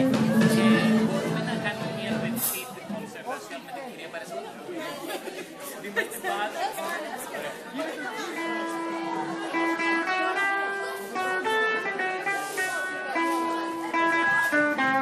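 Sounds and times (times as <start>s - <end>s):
music with held notes: 0.0s - 2.6s, 8.3s - 15.0s
voices chattering in echoing hall: 0.0s - 15.0s.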